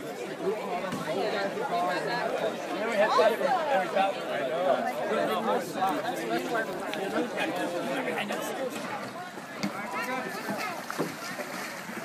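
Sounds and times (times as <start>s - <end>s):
water splashing around feet and paddles: 5.2s - 12.0s.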